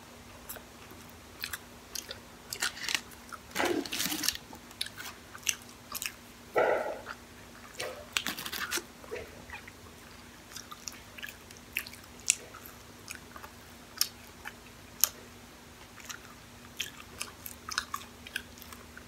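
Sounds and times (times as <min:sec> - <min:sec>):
chewing french fries: 0:00.3 - 0:19.0.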